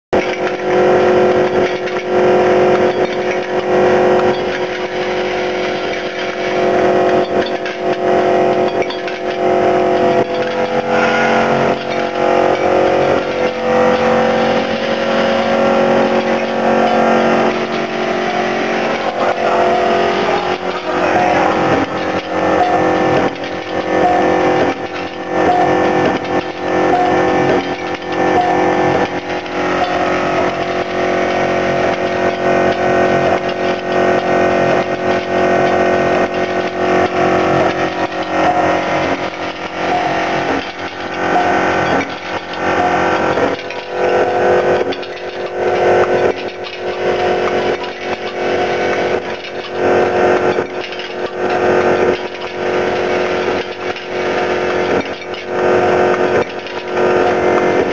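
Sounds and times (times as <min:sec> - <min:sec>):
machine humming: 0:00.1 - 0:57.9
machine clicks and knocks: 0:00.2 - 0:57.9.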